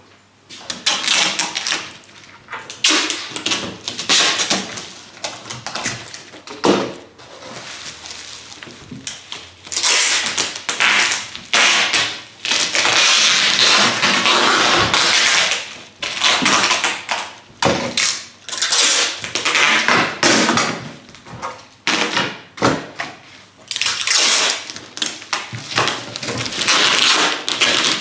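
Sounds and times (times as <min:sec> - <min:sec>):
bubble wrap crinkling: 0:00.8 - 0:19.9, 0:23.6 - 0:28.0.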